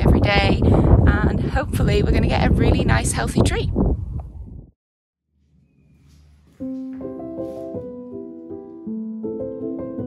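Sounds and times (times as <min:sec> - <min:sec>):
low wind rumble on microphone: 0:00.0 - 0:04.8.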